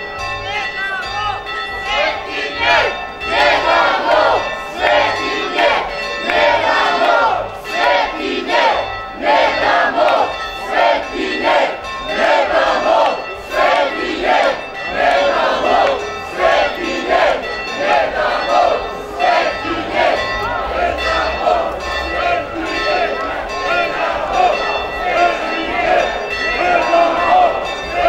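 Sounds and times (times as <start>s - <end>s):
crowd chanting in unison: 0.6s - 28.0s.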